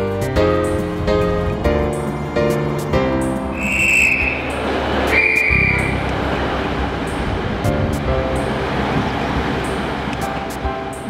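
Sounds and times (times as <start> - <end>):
piano music: 0.0 - 11.0
low rumble: 0.8 - 11.0
railway whistle blasts: 3.5 - 6.1.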